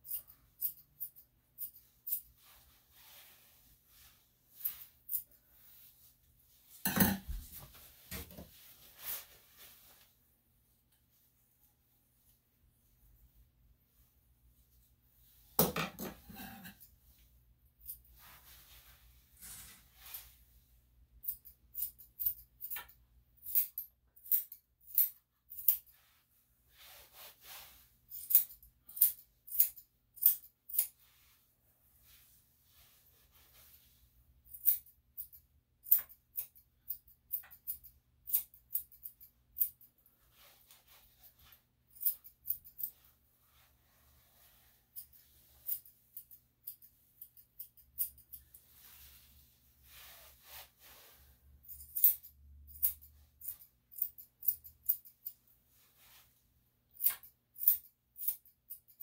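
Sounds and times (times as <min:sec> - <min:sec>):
soft rustles of hair: 0:00.0 - 0:15.6, 0:16.2 - 0:23.0, 0:25.3 - 0:59.0
scissors snipping hair: 0:57.0 - 0:59.0.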